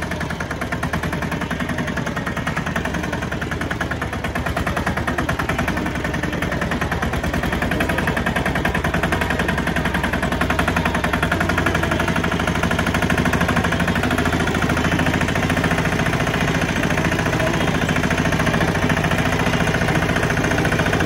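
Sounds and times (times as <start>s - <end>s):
diesel tractor engine put-put: 0.0s - 21.0s.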